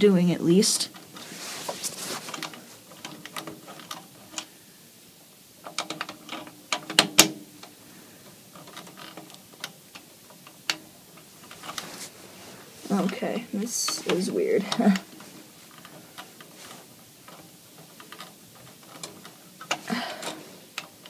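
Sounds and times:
plastic clicks and scrapes: 0.9s - 4.5s, 12.9s - 21.0s.

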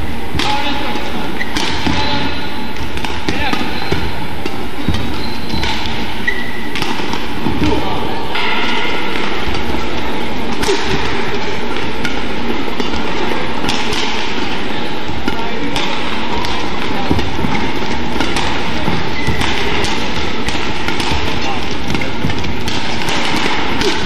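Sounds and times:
crowd voices in hall: 0.0s - 24.0s
rackets striking shuttlecock: 0.0s - 24.0s
shoes squeaking on court: 1.0s - 24.0s.

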